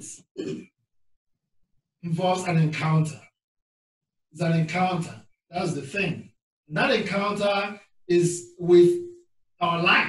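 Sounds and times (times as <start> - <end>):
man speaking: 2.0 - 3.3, 4.4 - 10.0.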